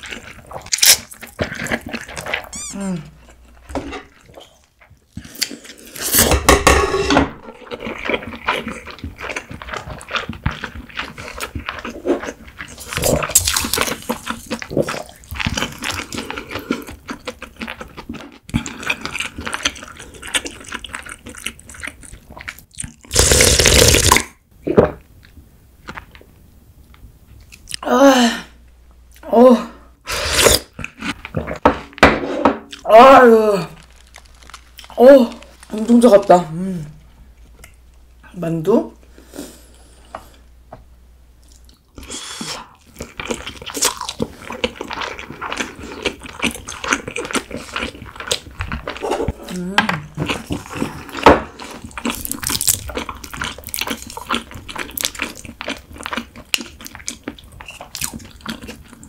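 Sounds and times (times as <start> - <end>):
loud slurps of noodles: 23.1 - 24.2, 30.1 - 30.7.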